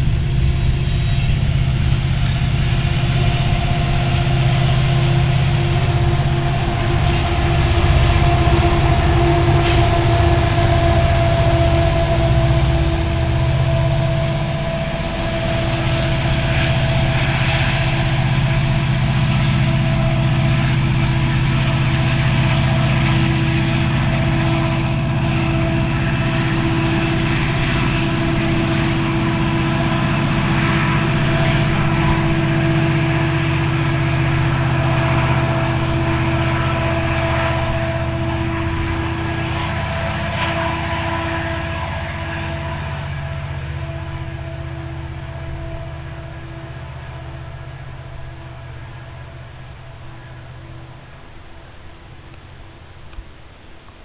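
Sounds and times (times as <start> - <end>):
deep locomotive engine drone: 0.0 - 54.0
high sustained whine: 0.0 - 54.0.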